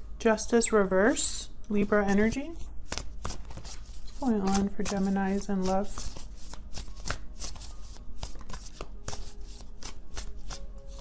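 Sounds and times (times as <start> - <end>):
cards being shuffled: 2.1 - 11.0.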